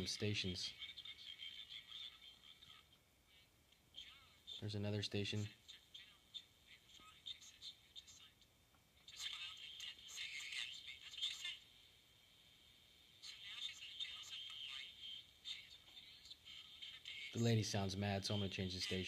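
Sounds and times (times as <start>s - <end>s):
woman talking over small radio speaker: 0.0s - 11.9s, 13.1s - 19.0s.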